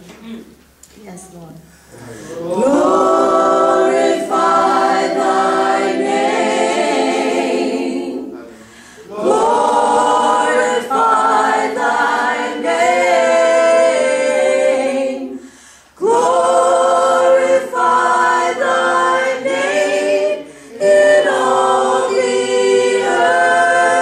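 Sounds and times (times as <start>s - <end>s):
women singing a cappella harmony: 2.2s - 24.0s
short breath: 8.5s - 9.1s, 15.4s - 16.0s.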